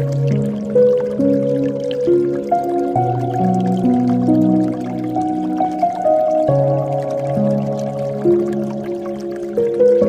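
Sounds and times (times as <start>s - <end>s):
faint dripping water: 0.0s - 10.0s
soft meditation piano music: 0.0s - 10.0s.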